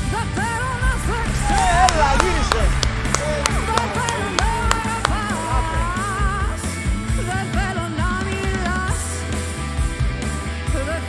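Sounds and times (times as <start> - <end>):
sharp percussion hits: 0.0 - 6.8
live rock band: 0.0 - 11.0.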